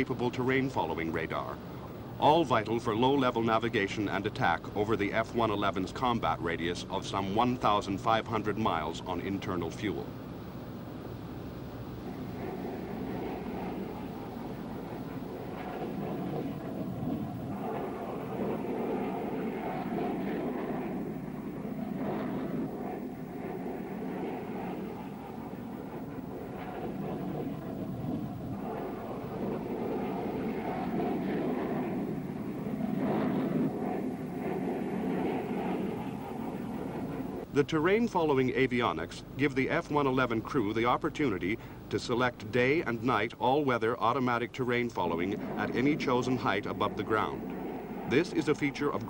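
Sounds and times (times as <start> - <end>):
jet engine rumble: 0.0 - 49.0.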